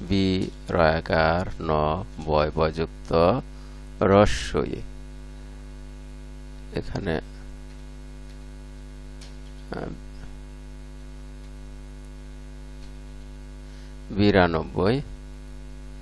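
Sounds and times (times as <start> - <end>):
electrical mains hum: 0.0 - 16.0.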